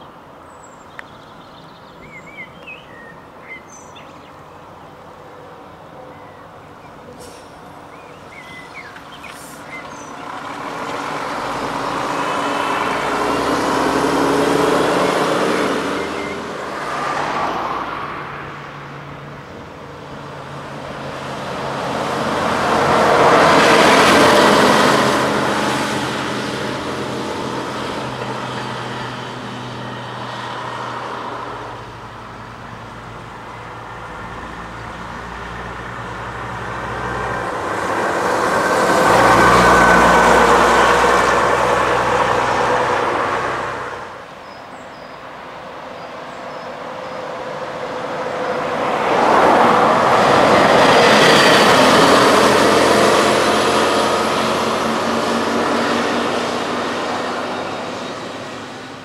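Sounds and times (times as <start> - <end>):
buses driving past: 0.0 - 59.0
road noise: 0.0 - 59.0.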